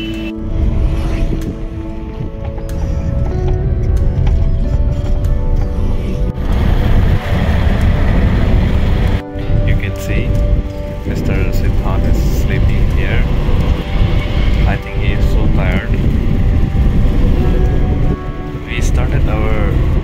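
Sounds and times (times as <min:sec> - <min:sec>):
car cabin road rumble: 0:00.0 - 0:20.0
music playing: 0:00.0 - 0:20.0.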